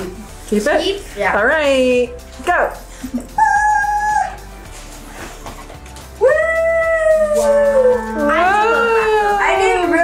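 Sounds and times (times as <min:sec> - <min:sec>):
background music: 0:00.0 - 0:10.0
girl squealing: 0:03.4 - 0:04.4.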